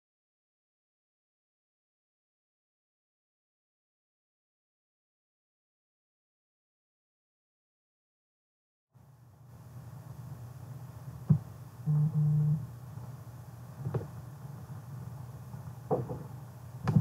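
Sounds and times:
microphone hum: 11.2s - 12.8s, 15.6s - 17.0s
short low tones: 11.3s - 12.8s
sharp knocks: 15.9s - 16.3s.

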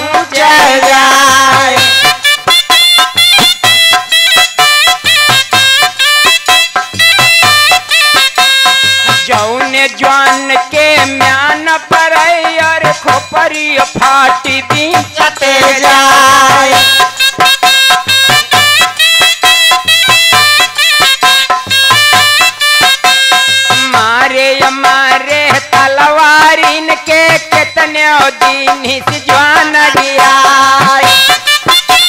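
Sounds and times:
drum beats: 0.0s - 32.0s
reed wind instrument melody: 1.7s - 9.4s, 16.7s - 24.0s, 31.0s - 32.0s.

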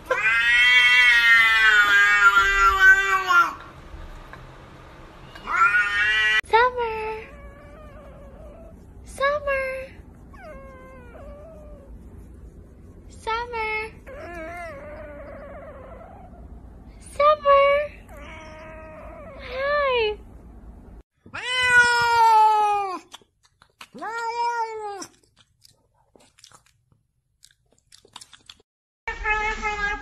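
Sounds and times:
cats meowing and yowling: 0.0s - 3.6s, 5.4s - 6.4s, 21.3s - 23.0s, 29.1s - 30.0s.

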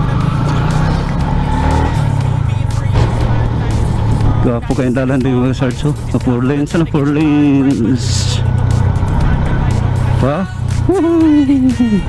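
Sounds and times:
motorcycle engine running: 0.0s - 12.0s.

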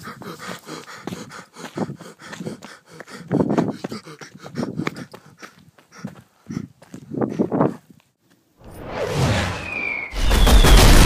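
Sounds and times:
man panting heavily: 0.0s - 8.0s.

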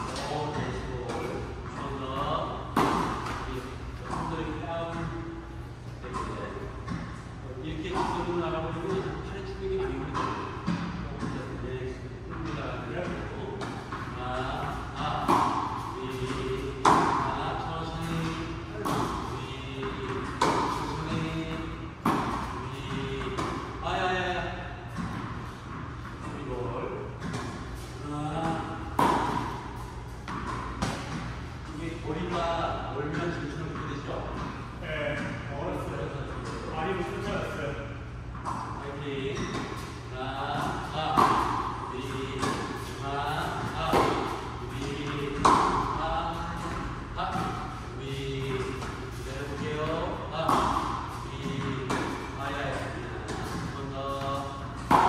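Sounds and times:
tennis ball hit with racket: 0.0s - 5.2s, 12.4s - 23.8s, 24.8s - 31.6s, 39.4s - 55.0s
tennis ball bouncing on hard court: 0.0s - 5.4s, 6.1s - 11.6s, 12.3s - 24.1s, 24.7s - 32.4s, 38.3s - 55.0s.

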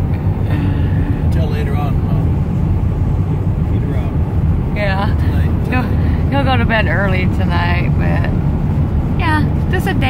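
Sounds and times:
truck engine and tyres rumbling: 0.0s - 10.0s.

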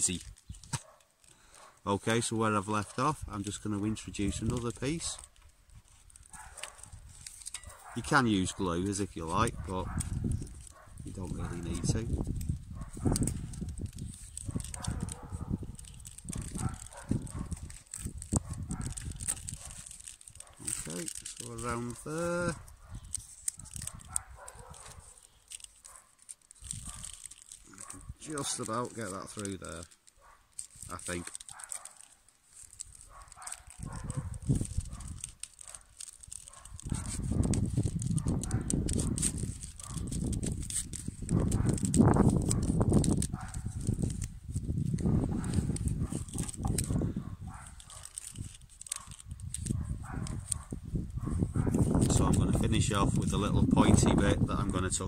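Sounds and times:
bark crackling and rustling: 0.0s - 55.0s.

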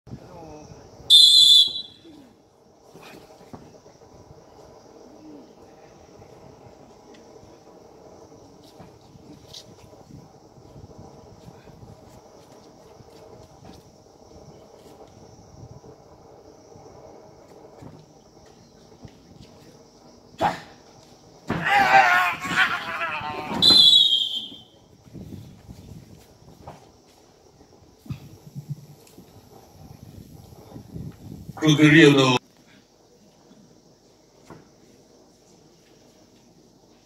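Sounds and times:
referee's whistle blast: 1.1s - 2.1s, 23.5s - 24.7s.

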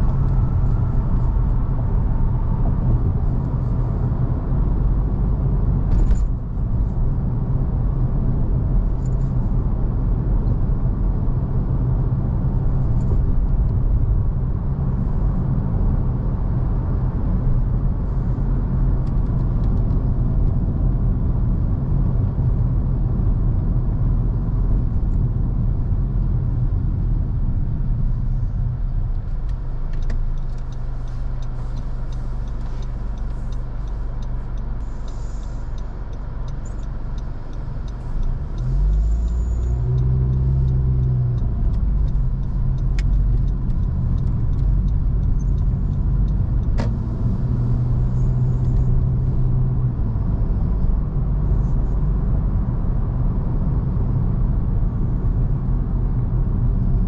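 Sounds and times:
car engine and tyre rumble: 0.0s - 57.0s.

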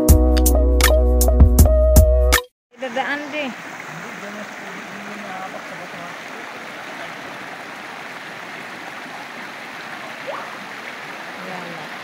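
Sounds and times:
stream rushing over rocks: 2.8s - 12.0s.

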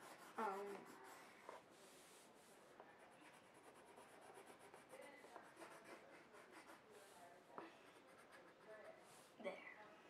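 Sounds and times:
pencil scratching on paper: 0.0s - 9.3s.

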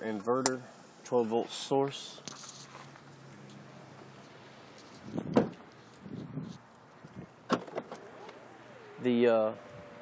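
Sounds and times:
car door shutting: 5.0s - 5.7s, 7.4s - 9.0s.

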